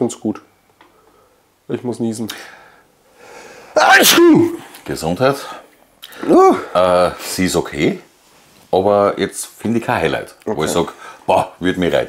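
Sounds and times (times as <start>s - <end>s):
man sneezing: 3.8s - 4.7s, 6.2s - 6.8s.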